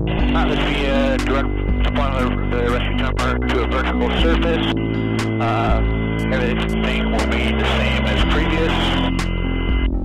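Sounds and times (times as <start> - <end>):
helicopter hum through intercom: 0.2 - 4.7, 5.4 - 9.1
intercom hiss: 0.2 - 4.8, 5.4 - 9.3.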